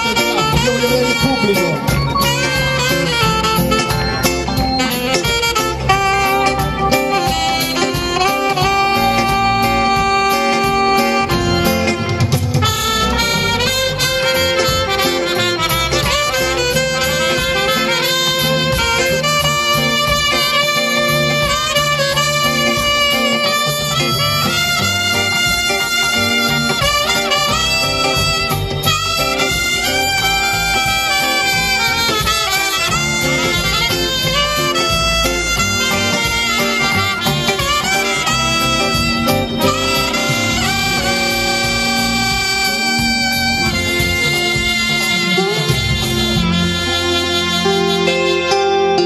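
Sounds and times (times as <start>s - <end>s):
steady drum beat: 0.0s - 48.8s
electric guitar: 0.0s - 49.0s
saxophone lead line: 0.0s - 49.0s
trumpet melody: 0.0s - 49.0s.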